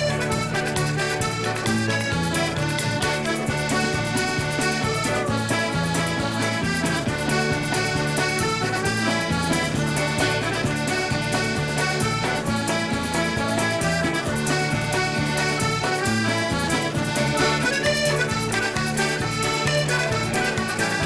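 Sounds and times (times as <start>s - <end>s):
accordion: 0.0s - 21.0s
folk dance tune: 0.0s - 21.0s.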